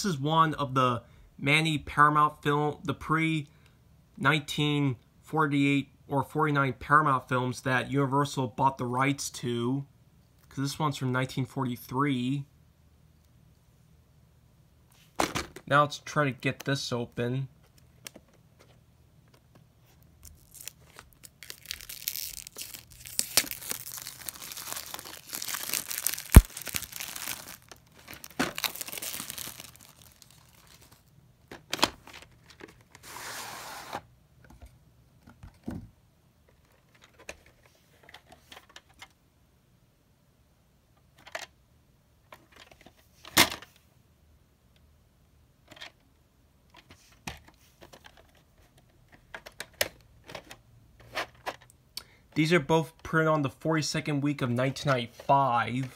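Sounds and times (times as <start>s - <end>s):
plastic wrap tearing and crackling: 20.2s - 31.1s
plastic cassettes clicking and knocking: 23.4s - 32.9s, 46.7s - 51.7s.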